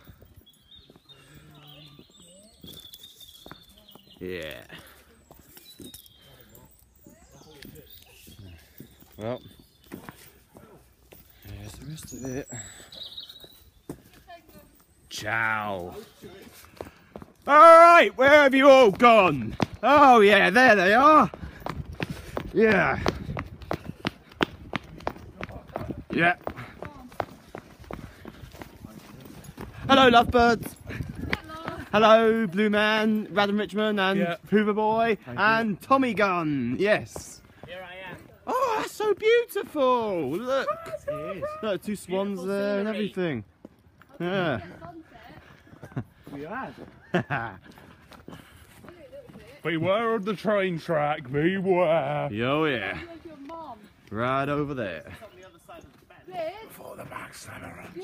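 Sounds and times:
footsteps on dirt path: 0.0 - 6.2, 7.1 - 41.7, 42.3 - 58.0.

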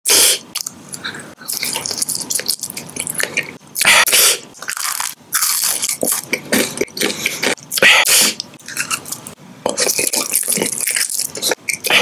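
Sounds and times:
chewing gummy candy: 0.5 - 3.9, 4.6 - 12.0.

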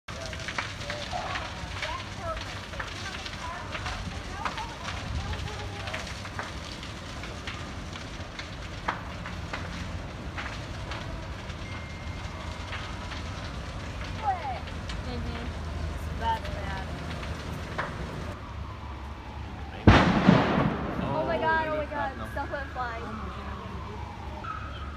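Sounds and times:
fire crackling and popping: 0.0 - 24.9
large fire rumbling: 0.1 - 24.9.

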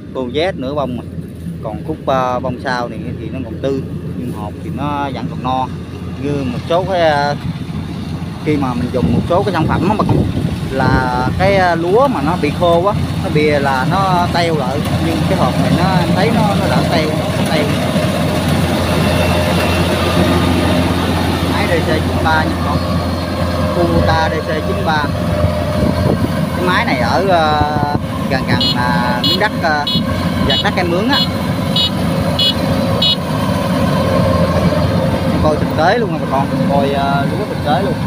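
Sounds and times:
combine harvester engine drone: 0.0 - 38.0
short high-pitched beeps: 28.6 - 33.2.

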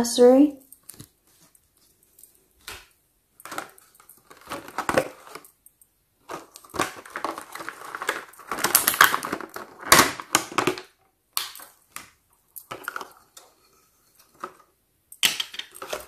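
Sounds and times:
plastic packaging crackling: 0.6 - 13.6, 14.2 - 16.0
sharp plastic snaps: 8.6 - 12.7.

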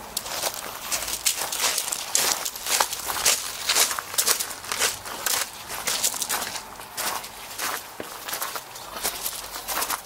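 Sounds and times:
footsteps walking: 0.0 - 10.0.

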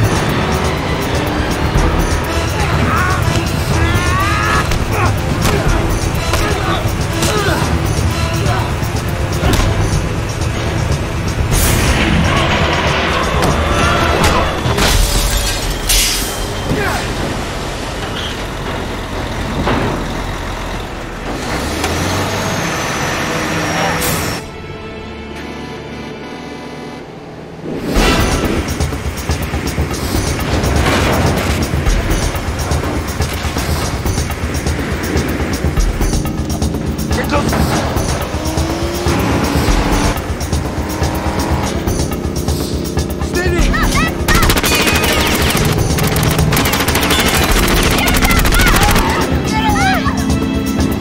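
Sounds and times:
film music score: 0.0 - 51.0
road noise: 0.0 - 51.0
truck engine drone: 0.0 - 51.0.

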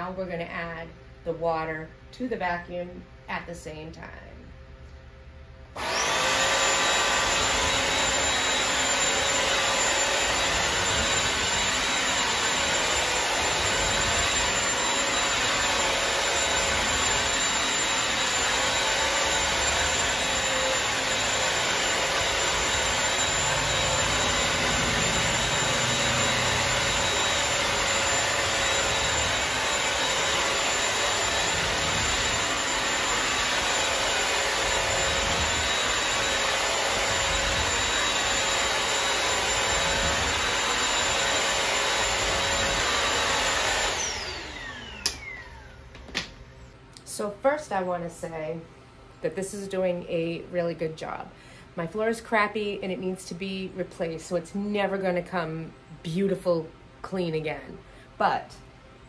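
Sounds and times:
floor cleaner whining: 5.8 - 46.5.

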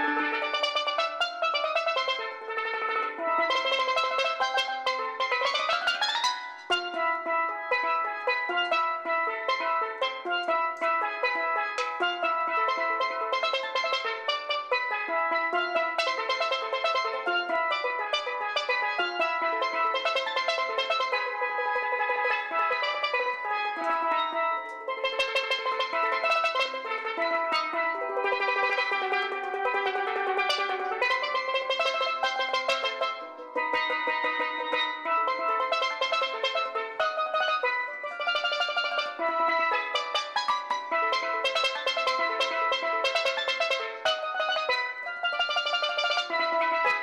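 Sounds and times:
steelpan melody: 0.0 - 47.0.

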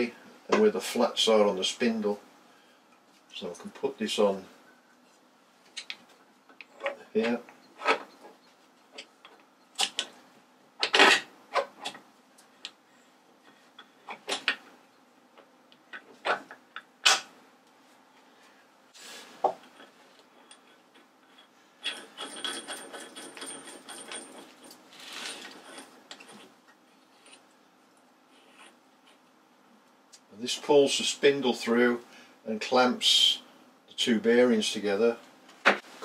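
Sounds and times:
metal rattling and scraping: 20.7 - 26.6.

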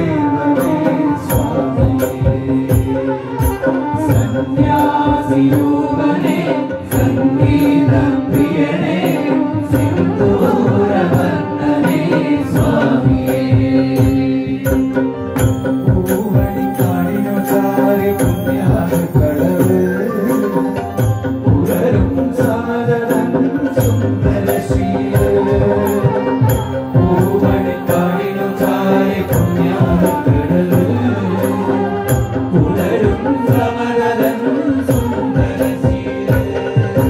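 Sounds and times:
group of men singing: 0.0 - 37.0
hand percussion beat: 0.0 - 37.0
keyboard: 0.0 - 37.0.

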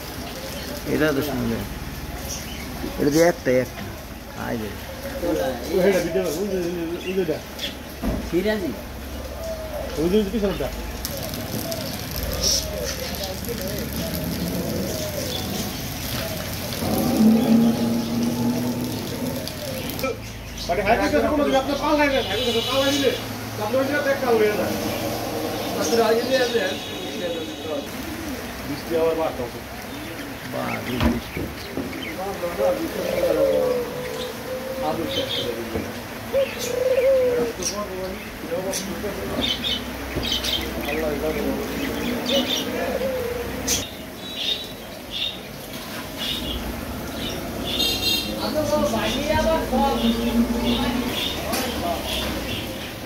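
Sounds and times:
small birds chirping: 0.0 - 35.6, 36.3 - 53.0
street noise: 0.0 - 53.0
dove cooing: 9.1 - 10.2, 10.9 - 20.1, 32.7 - 35.7, 36.3 - 37.9, 41.8 - 43.8
indistinct background voices: 23.2 - 28.6, 48.3 - 53.0.

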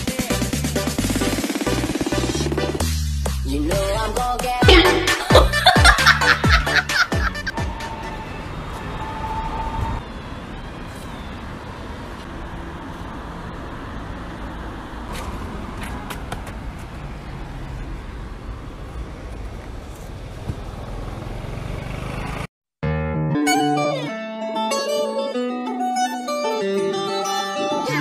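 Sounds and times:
street traffic noise: 0.0 - 22.5
background music with plucked strings: 22.8 - 28.0.

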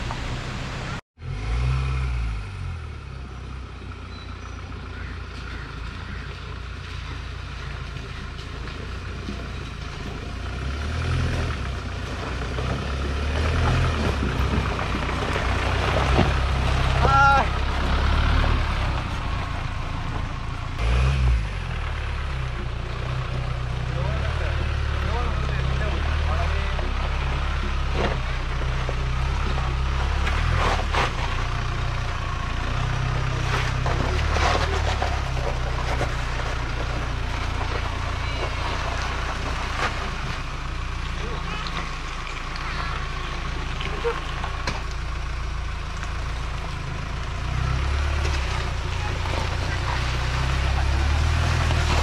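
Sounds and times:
diesel engine running: 0.0 - 52.0
vehicle crawling over rocky trail: 0.0 - 52.0.

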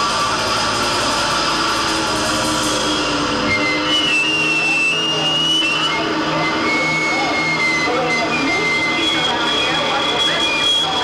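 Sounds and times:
high wavering whine: 0.0 - 11.0.

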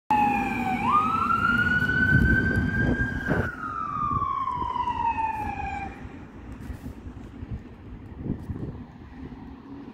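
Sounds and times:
ambulance siren: 0.1 - 6.3
engine and road noise: 0.1 - 9.9.

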